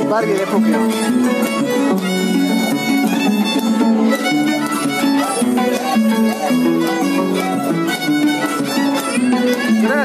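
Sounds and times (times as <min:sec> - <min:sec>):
bowed violin melody: 0:00.0 - 0:10.0.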